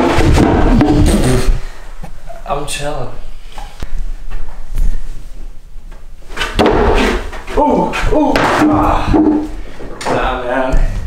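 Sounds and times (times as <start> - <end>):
board clattering thump: 0.0 - 1.1, 6.4 - 7.4.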